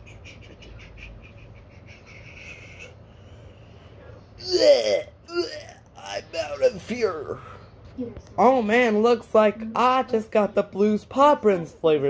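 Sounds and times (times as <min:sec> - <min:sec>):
person groaning in disgust: 0:04.4 - 0:07.4.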